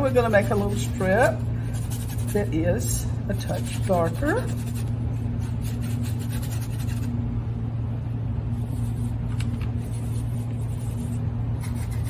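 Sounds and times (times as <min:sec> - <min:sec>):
paintbrush scratching on canvas: 0:00.0 - 0:02.6, 0:03.4 - 0:07.1, 0:09.8 - 0:12.0
low hum: 0:00.0 - 0:12.0.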